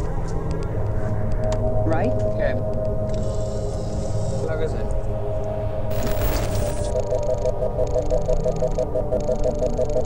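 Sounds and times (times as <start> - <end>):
low electronic rumble: 0.0 - 10.0
pulsing electronic tone: 5.7 - 10.0.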